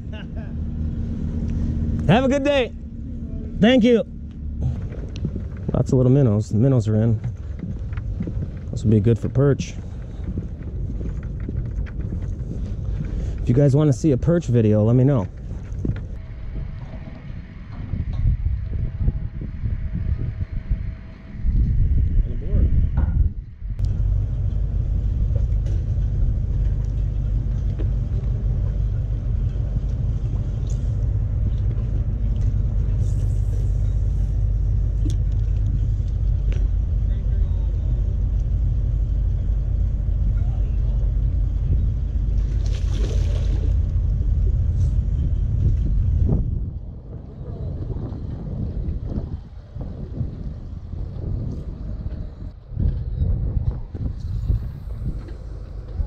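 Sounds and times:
low engine rumble: 0.0s - 56.0s.

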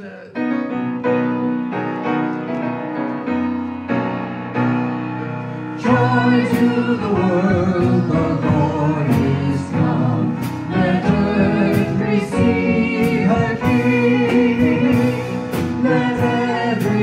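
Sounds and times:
keyboard: 0.0s - 17.0s
live band playing: 0.0s - 17.0s
people singing a carol: 5.8s - 17.0s
drum hits: 5.9s - 17.0s.

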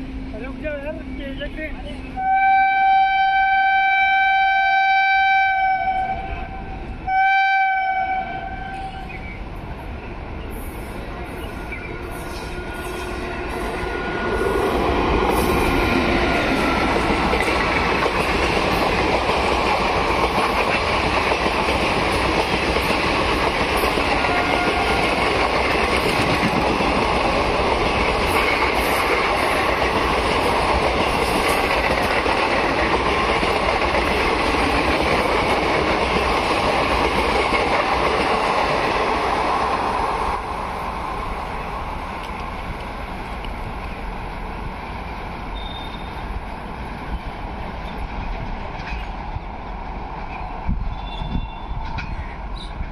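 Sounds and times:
approaching train rumble: 0.0s - 52.9s
train horn blast: 2.2s - 9.1s, 11.3s - 14.5s, 24.2s - 25.1s
train wheels clickety-clack: 11.8s - 40.5s, 46.9s - 52.9s.

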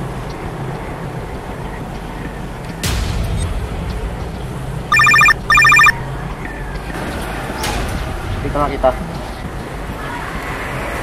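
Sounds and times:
mobile phone ringing: 4.9s - 6.0s.

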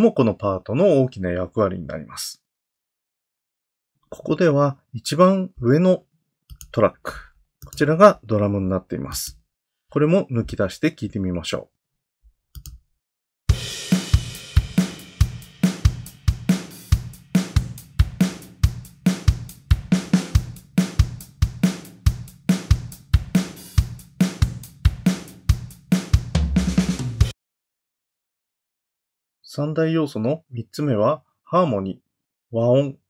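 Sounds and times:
cymbal crash: 13.5s - 19.3s
drum kit playing pop beat: 13.5s - 27.4s.

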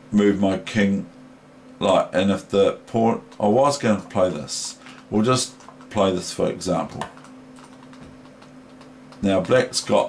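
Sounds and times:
steady low hum: 0.0s - 10.0s
computer mouse clicks: 4.6s - 6.0s, 6.9s - 9.6s.

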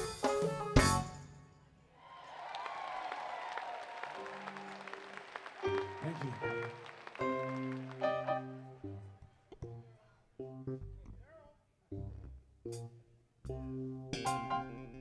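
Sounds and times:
keyboard and bass playing softly: 0.0s - 1.3s, 4.2s - 15.0s
live band playing: 0.0s - 1.3s, 5.6s - 8.8s, 14.1s - 14.9s
audience applauding and cheering: 2.0s - 9.1s.

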